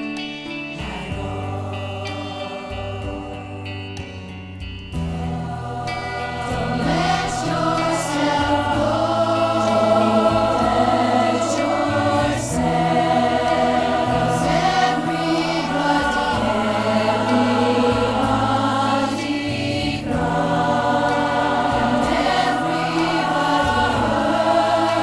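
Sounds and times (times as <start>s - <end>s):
choir singing in harmony: 0.0s - 25.0s
instrumental backing: 0.0s - 25.0s.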